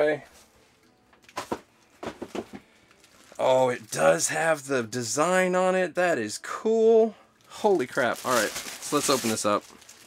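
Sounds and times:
foam packing handled: 0:07.9 - 0:10.0.

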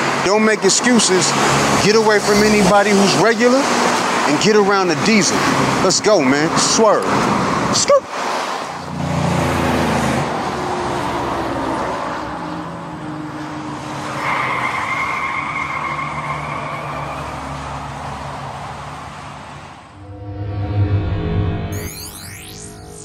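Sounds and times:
high tyre squeal: 0:14.0 - 0:17.9.

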